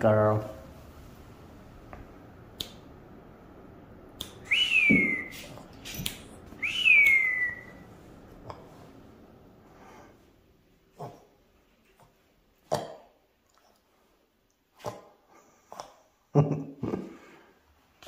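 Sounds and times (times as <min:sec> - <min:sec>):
person whistling to a dog: 0:04.5 - 0:05.6, 0:06.6 - 0:07.8.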